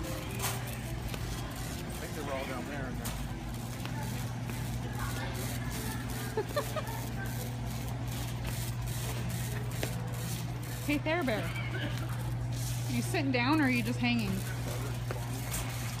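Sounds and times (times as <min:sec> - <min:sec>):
faint distant voices: 0:00.0 - 0:16.0
shopping cart rattling: 0:00.0 - 0:16.0.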